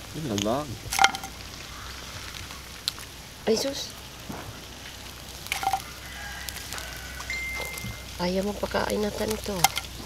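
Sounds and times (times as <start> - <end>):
faint hiss: 0.0 - 10.0
light clicks and crackles: 0.2 - 3.2, 4.2 - 10.0
thin high tone: 7.1 - 8.3.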